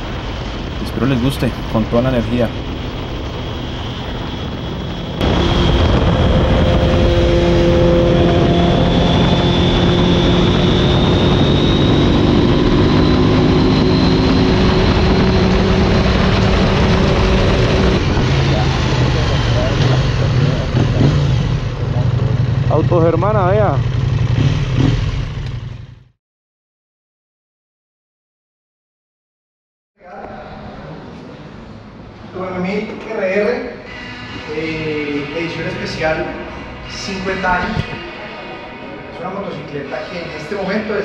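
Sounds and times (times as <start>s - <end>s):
wind rush: 0.0s - 21.0s, 36.4s - 39.2s
motorcycle engine drone: 0.0s - 26.2s, 30.0s - 41.0s
wavering warbling tone: 4.3s - 20.3s.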